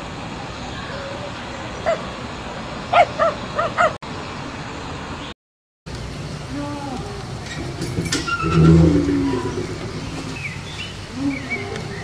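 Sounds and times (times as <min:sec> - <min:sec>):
steady background noise: 0:00.0 - 0:12.0
dog barking in high yaps: 0:03.0 - 0:04.0.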